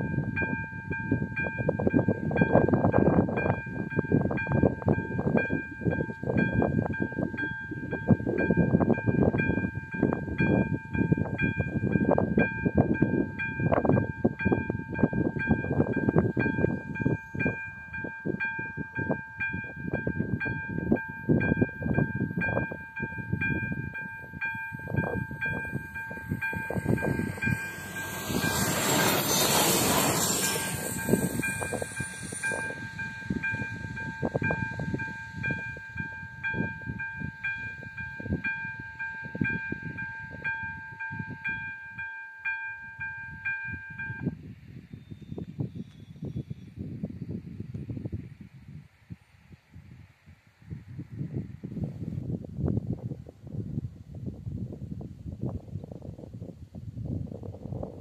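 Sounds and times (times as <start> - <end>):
diesel railcar approaching: 0.0 - 44.4
wind buffeting microphone: 0.0 - 58.0.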